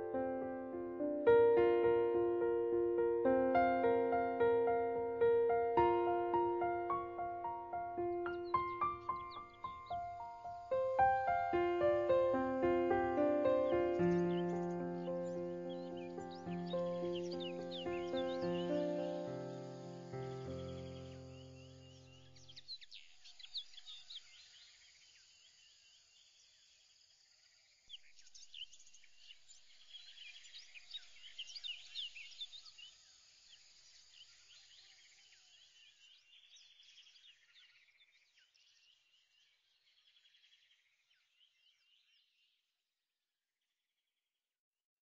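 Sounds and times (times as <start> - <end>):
held music notes: 0.0 - 21.2
birdsong chirps and whistles: 5.9 - 25.8, 27.9 - 42.5.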